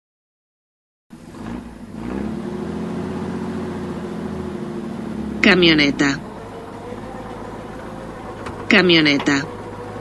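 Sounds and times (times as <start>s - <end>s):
van engine running: 1.1s - 10.0s.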